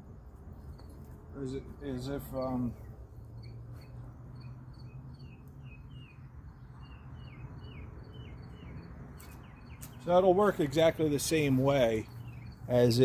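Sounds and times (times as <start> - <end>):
small bird chirping: 1.8 - 10.1, 12.0 - 12.9.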